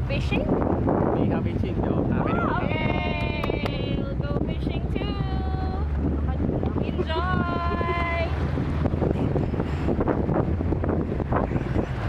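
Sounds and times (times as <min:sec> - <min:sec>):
outboard motor running: 0:00.0 - 0:12.0
water rushing past hull: 0:00.0 - 0:12.0
wind buffeting microphone: 0:00.0 - 0:12.0.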